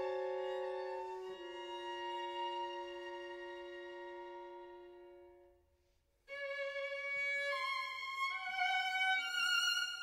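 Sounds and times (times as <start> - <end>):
bayan violin and cello music: 0.0 - 5.6, 6.3 - 10.0.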